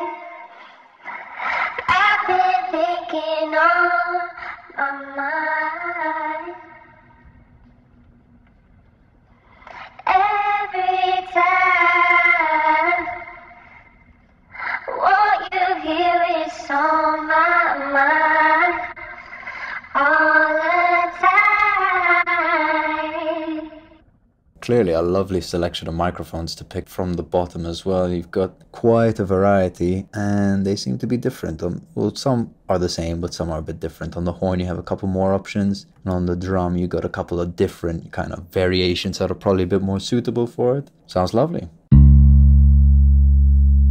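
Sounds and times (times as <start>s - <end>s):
singing through rotary speaker: 1.5s - 7.0s.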